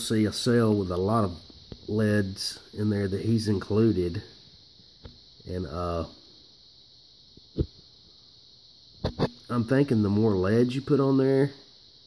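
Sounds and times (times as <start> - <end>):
high-pitched electrical whine: 0.0 - 12.0.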